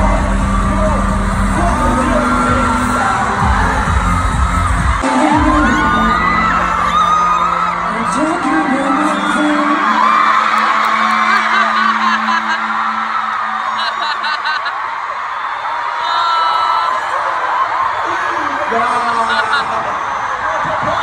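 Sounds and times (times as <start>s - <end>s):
pop song heavy bass: 0.0s - 13.7s
crowd screaming and cheering: 0.0s - 21.0s.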